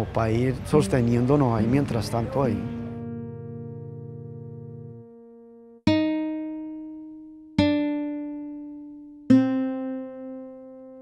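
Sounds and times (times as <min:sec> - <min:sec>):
guitar plucking notes: 0:00.5 - 0:11.0.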